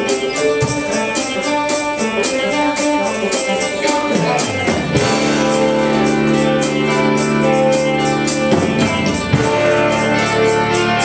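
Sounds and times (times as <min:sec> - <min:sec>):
drum kit beat: 0:00.0 - 0:11.0
electric guitar: 0:00.0 - 0:11.0.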